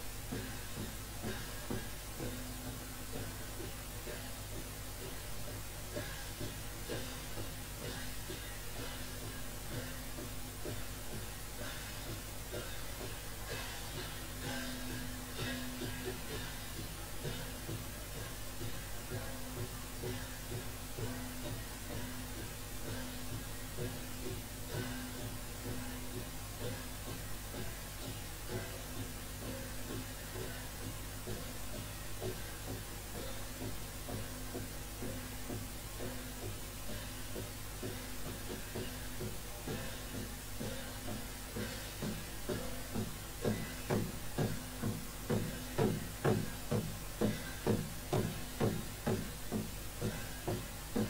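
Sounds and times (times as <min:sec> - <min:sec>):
drums beating: 0:00.0 - 0:51.0.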